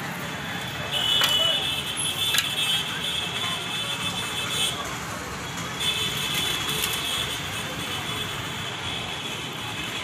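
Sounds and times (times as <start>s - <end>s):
road traffic from cars and motorcycles: 0.0s - 10.0s.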